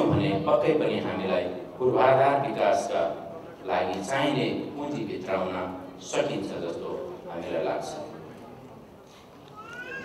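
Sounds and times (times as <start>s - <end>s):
man's amplified speech: 0.0s - 8.5s.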